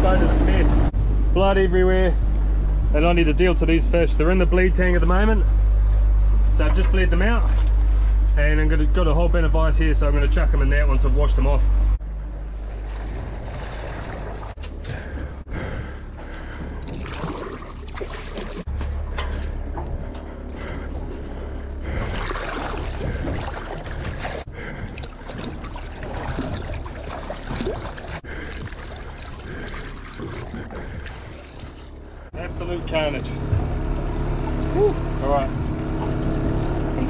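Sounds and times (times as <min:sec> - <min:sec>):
seawater splashing and sloshing: 0:06.8 - 0:08.2, 0:12.0 - 0:15.5, 0:16.6 - 0:19.6, 0:20.6 - 0:32.4.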